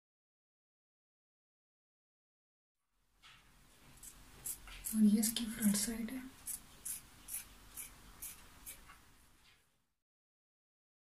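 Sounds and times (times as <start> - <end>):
scissors snipping fabric: 6.4 - 9.0.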